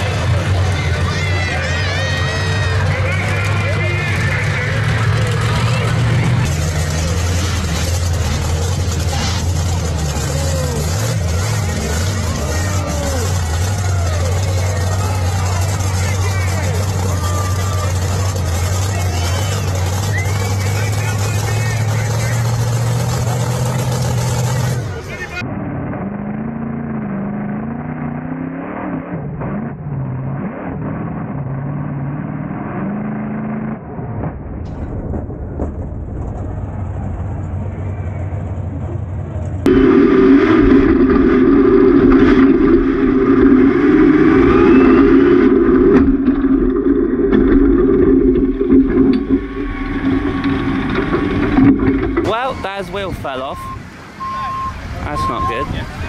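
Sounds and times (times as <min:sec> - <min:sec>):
monster truck engine running: 0:00.0 - 0:56.0.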